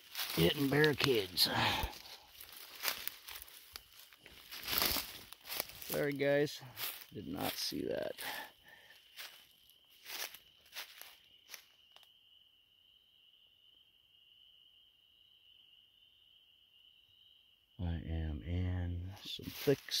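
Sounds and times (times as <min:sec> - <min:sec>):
branches crackling and rustling: 0:00.0 - 0:12.1, 0:19.4 - 0:20.0
footsteps in brush: 0:00.0 - 0:12.1, 0:19.4 - 0:20.0
night insects trilling: 0:00.0 - 0:20.0.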